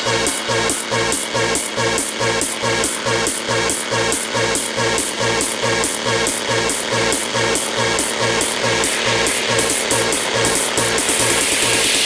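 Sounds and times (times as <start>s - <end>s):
off-beat hi-hats: 0.0s - 12.0s
pulsing bassline: 0.0s - 12.0s.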